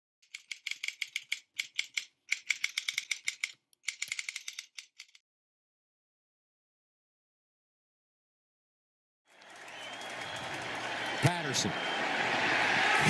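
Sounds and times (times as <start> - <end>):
keyboard keys clicking: 0.2 - 5.2.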